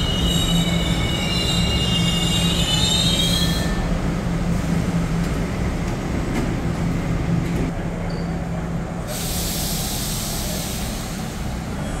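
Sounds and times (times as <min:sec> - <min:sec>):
train hissing: 0:09.0 - 0:12.0.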